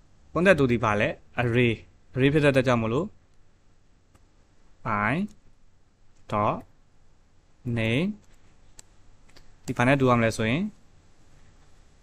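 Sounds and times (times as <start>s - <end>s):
man speaking: 0.3s - 3.2s, 4.8s - 5.4s, 6.2s - 6.7s, 7.6s - 8.3s, 9.6s - 10.8s.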